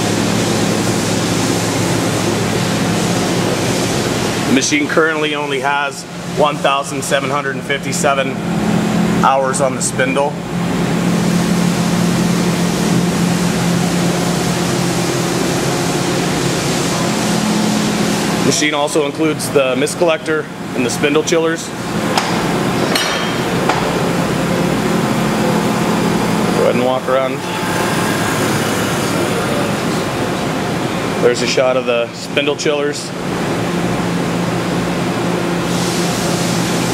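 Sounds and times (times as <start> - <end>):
cooling fans running: 0.0 - 36.9
machine low hum: 0.0 - 36.9.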